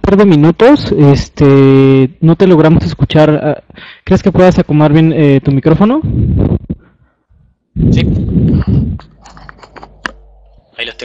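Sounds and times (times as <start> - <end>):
muffled microphone rumbling: 6.0 - 11.0.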